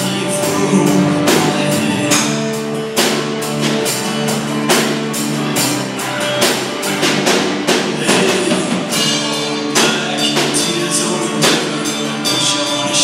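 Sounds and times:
bass guitar: 0.0 - 13.0
drum kit steady beat: 0.0 - 13.0
electric guitar chords: 0.0 - 13.0
strummed acoustic guitar: 0.0 - 13.0.

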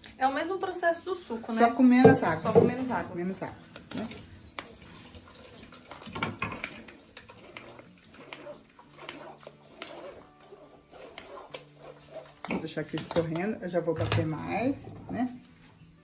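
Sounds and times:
metal spoon scraping sieve: 3.8 - 13.6.

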